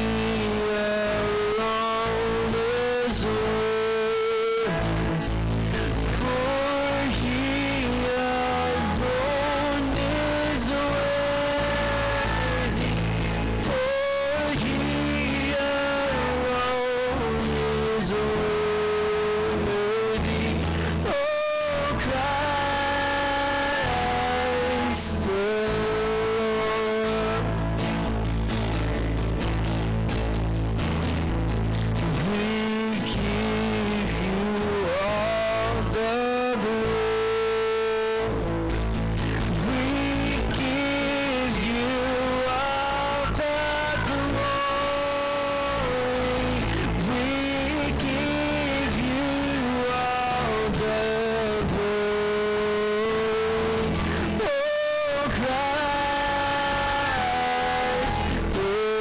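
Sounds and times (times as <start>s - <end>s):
bass: 0.0s - 59.0s
guitars: 0.0s - 59.0s
live worship band music: 0.0s - 59.0s.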